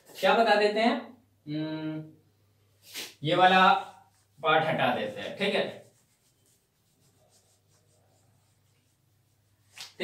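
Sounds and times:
duster wiping a whiteboard: 2.8 - 10.0.

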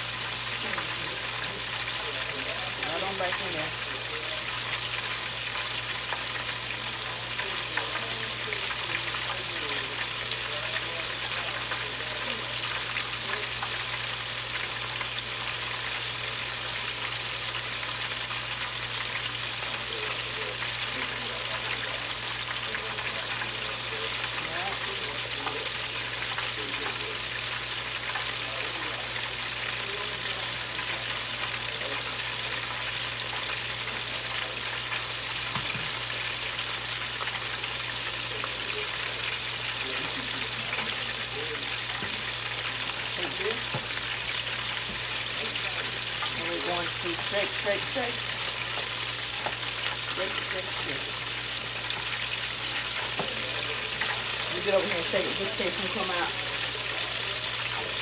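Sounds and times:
food sizzling in deep fryer: 0.0 - 58.0.

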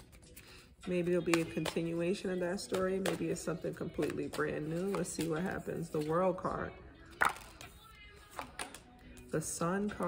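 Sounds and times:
cards clicking and rustling: 2.6 - 6.1, 7.1 - 9.3.

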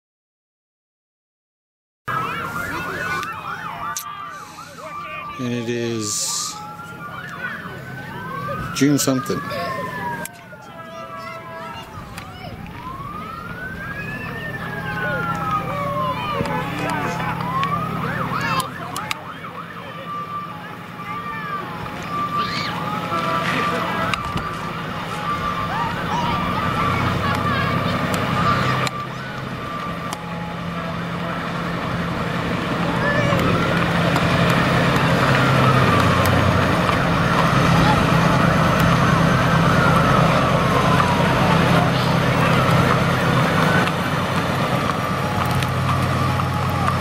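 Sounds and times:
spectators shouting and cheering: 2.1 - 47.0
steady siren tones: 2.1 - 47.0
yelping siren: 2.1 - 47.0.

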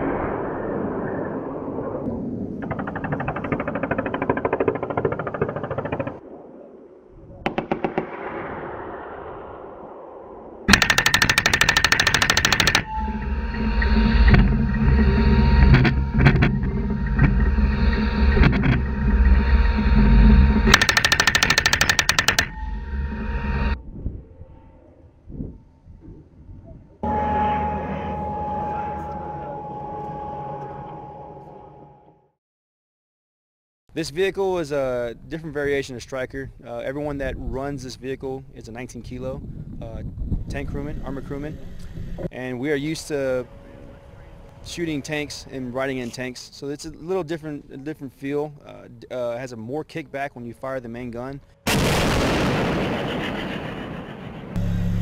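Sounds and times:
machine-gun fire bursts: 7.5 - 8.5, 10.7 - 12.8
drivetrain whine: 10.6 - 25.1, 54.5 - 55.0
vehicle engine low rumble: 12.3 - 31.3, 54.5 - 55.0.

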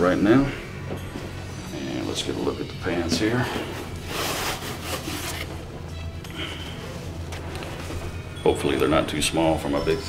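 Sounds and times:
background music: 0.0 - 10.0
pants rustling against cardboard: 3.2 - 5.7.

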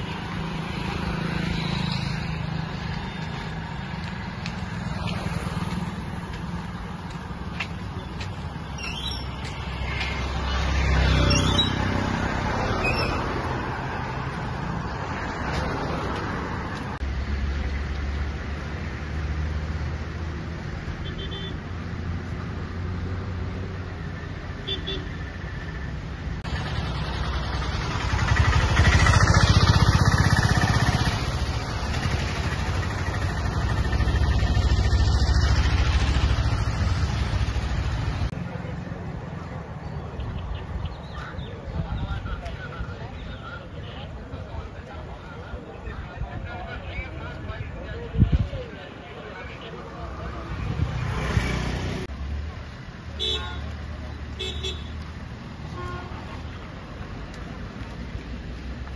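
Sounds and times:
rumble of passing vehicles: 0.0 - 58.9.

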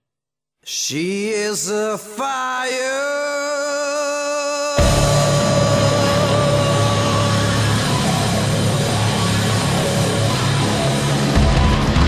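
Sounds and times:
distorted electric guitars: 4.8 - 12.0
drums: 4.8 - 12.0
long held note: 4.8 - 12.0.

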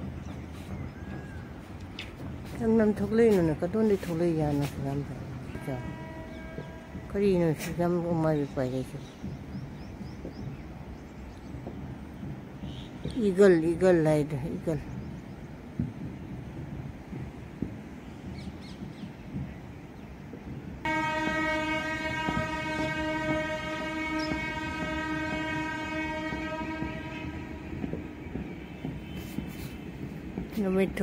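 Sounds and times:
long horn blast: 5.5 - 7.0, 20.9 - 28.4.

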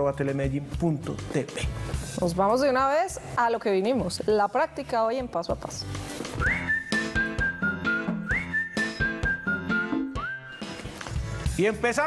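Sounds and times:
whistle-like jingle melody: 6.4 - 10.7.

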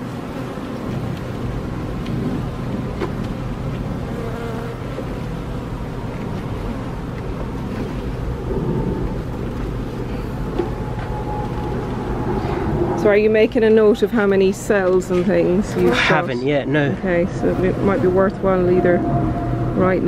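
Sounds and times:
honeybees buzzing: 3.5 - 6.1.

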